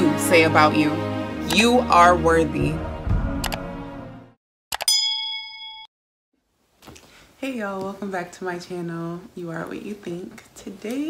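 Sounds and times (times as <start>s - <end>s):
notification bell chime: 4.8s - 5.9s.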